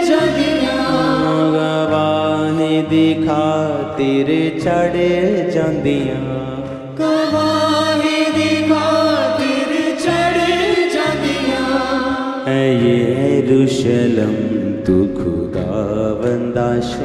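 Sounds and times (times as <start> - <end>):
worship song with singing: 0.0 - 17.0.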